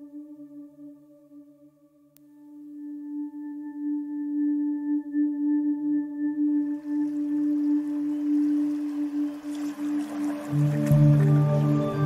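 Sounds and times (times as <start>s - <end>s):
singing bowl tone: 0.0s - 12.0s.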